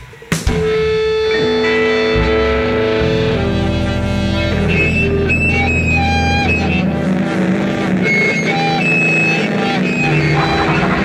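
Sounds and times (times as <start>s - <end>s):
distorted electric guitar feedback: 0.0s - 11.0s.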